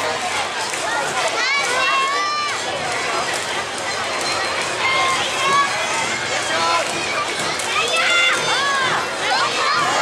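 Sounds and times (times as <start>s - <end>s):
crowd and street noise: 0.0s - 10.0s.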